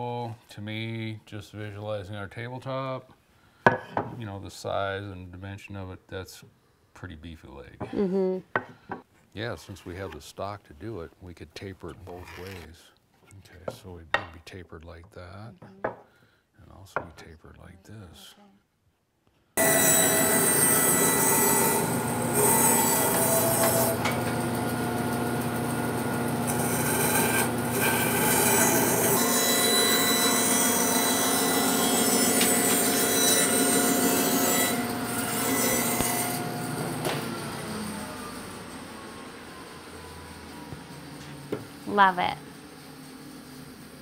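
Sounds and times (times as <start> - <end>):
bandsaw cutting wood: 19.6 - 38.4
saw winding down: 19.6 - 40.4.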